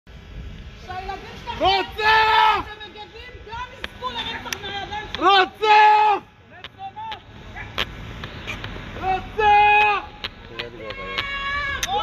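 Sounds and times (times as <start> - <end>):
people shouting outdoors: 0.8 - 8.1, 8.8 - 12.0
sharp crack: 6.5 - 9.1.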